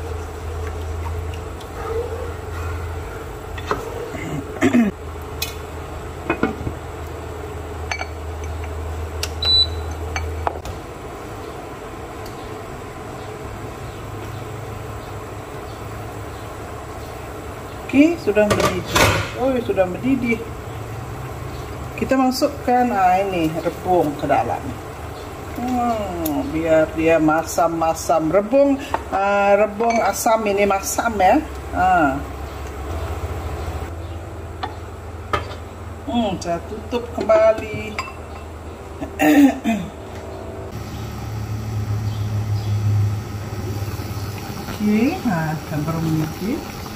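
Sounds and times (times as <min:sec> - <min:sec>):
induction cooktop humming: 0:00.0 - 0:46.9
low hum: 0:38.0 - 0:46.8.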